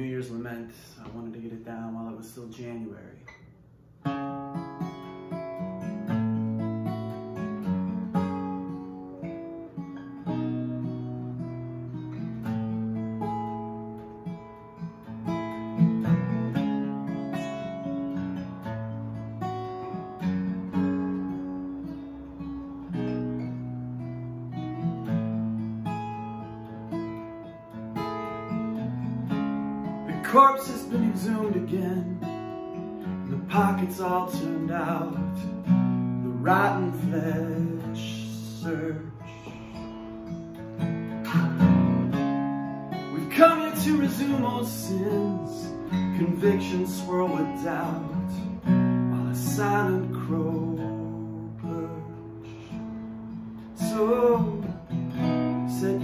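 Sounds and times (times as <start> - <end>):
acoustic guitar chords: 0.0 - 56.0.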